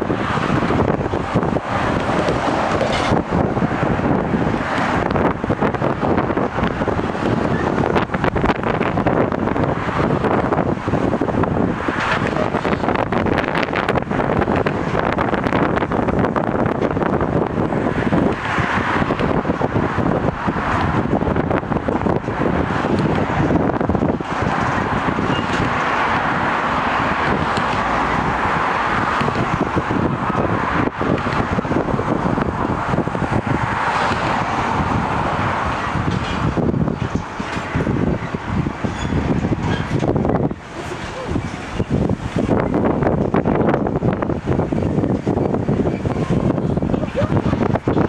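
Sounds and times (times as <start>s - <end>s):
train wheels rumbling on rail: 0.0s - 48.0s
wind buffeting microphone: 0.0s - 48.0s.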